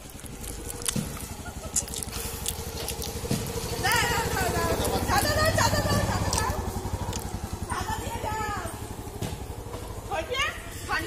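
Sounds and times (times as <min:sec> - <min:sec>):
small motorcycle engine pulling away: 0:00.0 - 0:11.0.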